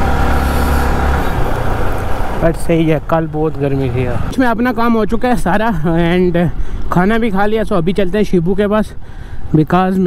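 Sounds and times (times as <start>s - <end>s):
motorcycle engine running: 0.0s - 2.6s
road rumble: 0.0s - 10.0s.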